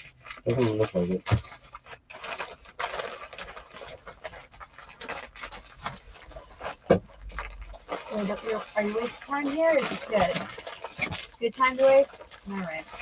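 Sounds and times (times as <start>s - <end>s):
package rustling and crinkling: 0.0s - 13.0s.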